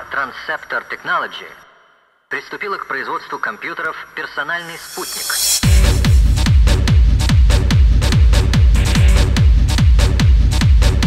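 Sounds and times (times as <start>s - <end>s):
person talking: 2.3s - 5.6s.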